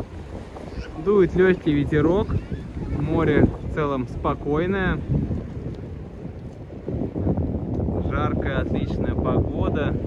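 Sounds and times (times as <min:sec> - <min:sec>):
faint wash of calm sea: 0:00.0 - 0:10.0
wind noise on microphone: 0:00.0 - 0:10.0.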